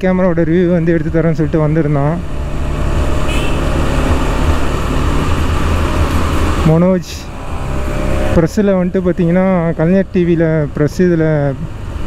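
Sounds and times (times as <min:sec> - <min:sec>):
motorcycle engine running: 0:02.2 - 0:06.7.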